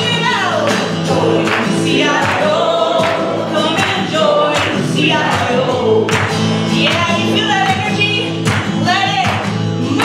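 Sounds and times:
strummed acoustic guitar: 0:00.0 - 0:10.0
woman singing folk song: 0:00.0 - 0:10.0.

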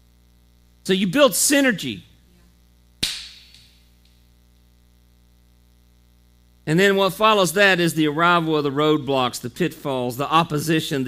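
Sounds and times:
mains hum: 0:00.0 - 0:11.0
sharp smack with room echo: 0:03.0 - 0:03.8.

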